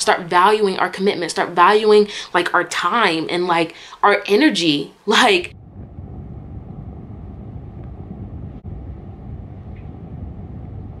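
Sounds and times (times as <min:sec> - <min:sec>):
low rumbling background noise: 0:05.5 - 0:11.0.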